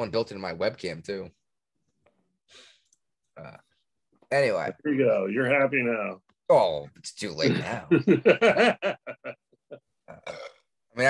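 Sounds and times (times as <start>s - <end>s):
man chuckling: 7.5s - 9.8s.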